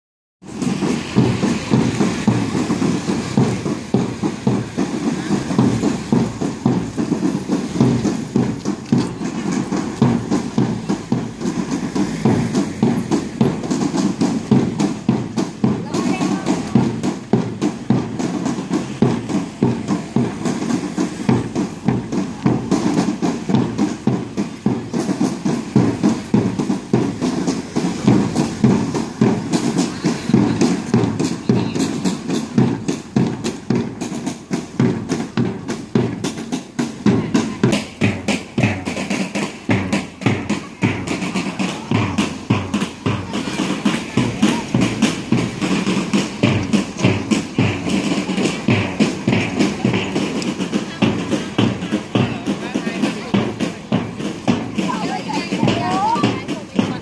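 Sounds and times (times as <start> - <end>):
parade band drums beating: 0.4 - 57.0
people's voices: 0.5 - 57.0.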